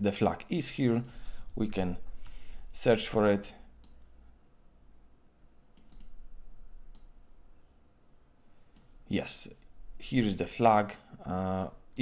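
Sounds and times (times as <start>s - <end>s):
faint computer input clicks: 5.4s - 6.2s.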